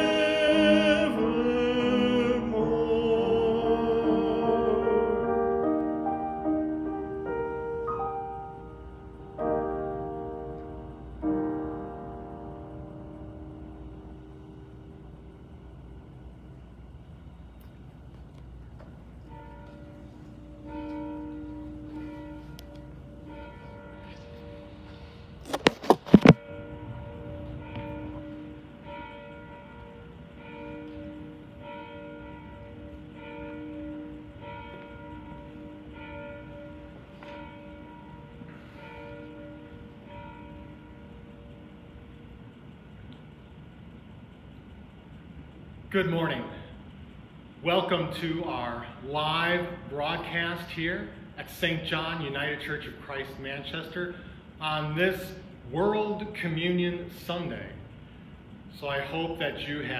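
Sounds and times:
church bells ringing: 0:00.0 - 0:17.9, 0:18.6 - 0:59.9
grand piano chord: 0:00.0 - 0:42.7
low room rumble: 0:00.0 - 0:59.9.

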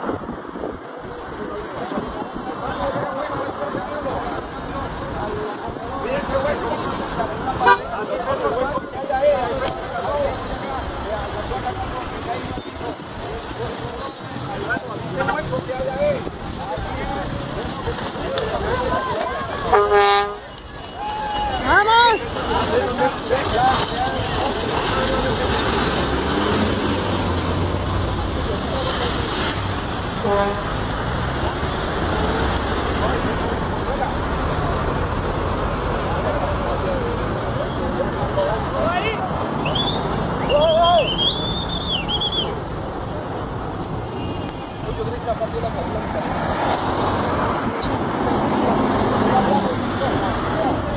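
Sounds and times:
faint crowd voices: 0:00.0 - 0:50.9
people talking at once: 0:01.0 - 0:25.8.

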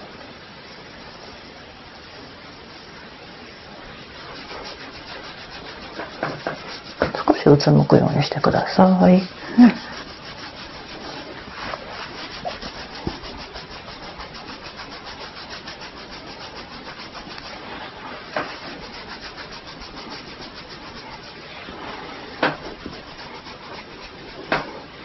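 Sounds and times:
fingertips rubbing scalp through hair: 0:03.6 - 0:25.0.

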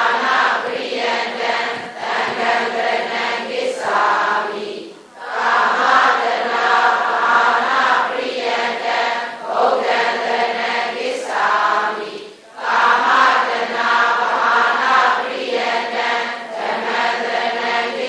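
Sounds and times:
group of voices chanting: 0:00.0 - 0:18.0.

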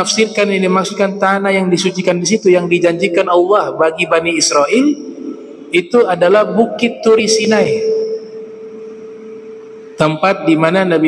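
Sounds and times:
person speaking: 0:00.0 - 0:08.0
microphone feedback tone: 0:02.6 - 0:11.0.

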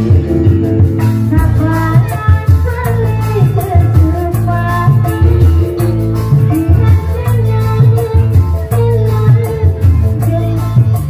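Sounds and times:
loud amplified music with bass beat: 0:00.0 - 0:11.0
woman singing into a microphone: 0:01.2 - 0:11.0.

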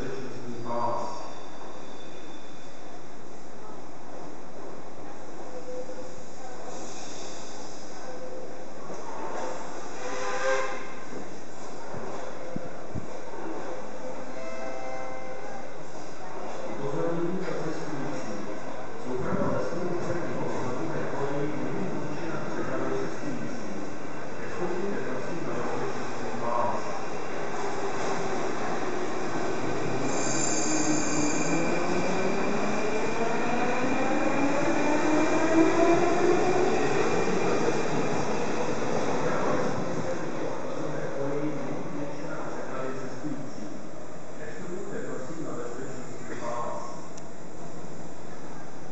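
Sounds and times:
metro train rumble in tunnel: 0:16.7 - 0:48.9
high squeal: 0:29.9 - 0:32.1.

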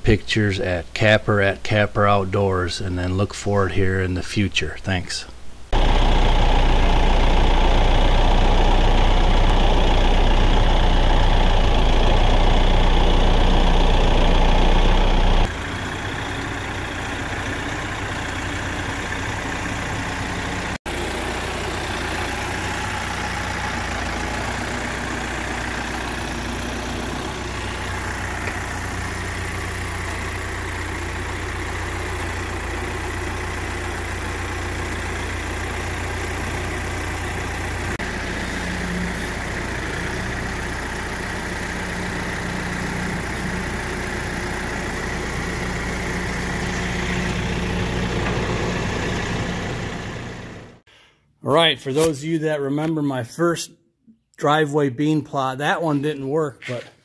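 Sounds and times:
tractor diesel engine idling: 0:05.7 - 0:50.9.

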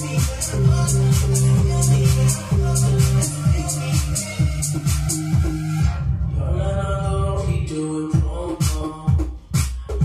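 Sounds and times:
dance music breakdown: 0:00.0 - 0:10.0.

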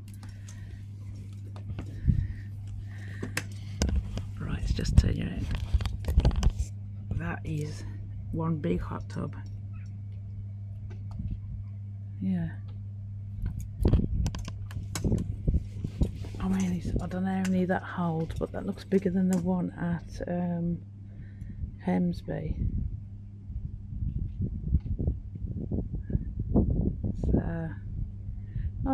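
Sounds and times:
steady low hum: 0:00.0 - 0:28.9.

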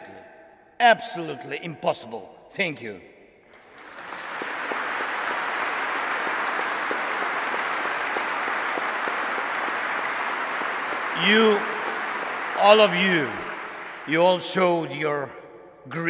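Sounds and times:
audience applauding: 0:03.5 - 0:14.8.

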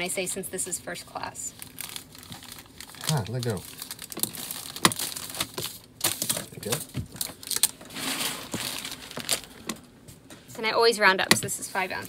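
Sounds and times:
plastic mailer crinkling: 0:01.6 - 0:09.8.

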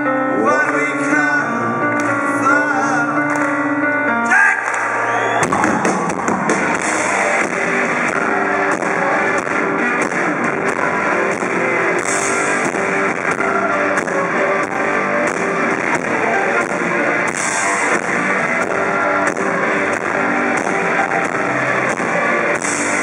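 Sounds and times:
live rock band playing: 0:00.0 - 0:23.0.

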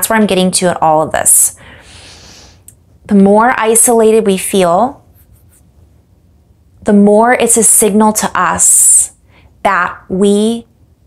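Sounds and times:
woman speaking: 0:00.0 - 0:01.6, 0:03.1 - 0:05.0, 0:06.8 - 0:10.7.

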